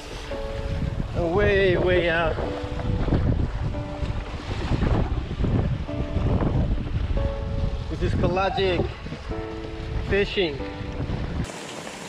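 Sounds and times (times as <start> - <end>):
wind buffeting microphone: 0.0 - 11.5
water rushing beneath board: 0.0 - 12.0.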